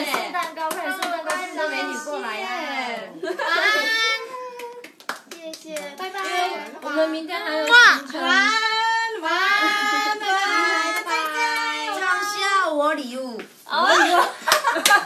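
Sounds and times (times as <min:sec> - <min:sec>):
young women singing: 0:00.0 - 0:04.3, 0:05.8 - 0:13.1.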